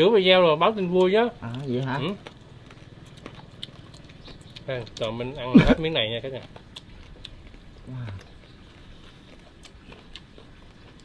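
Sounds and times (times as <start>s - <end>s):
faint crunchy chewing: 0.0s - 11.0s.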